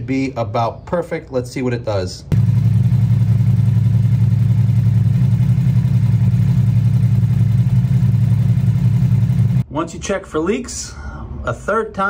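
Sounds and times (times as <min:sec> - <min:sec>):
motorcycle engine idling: 0:02.3 - 0:09.6.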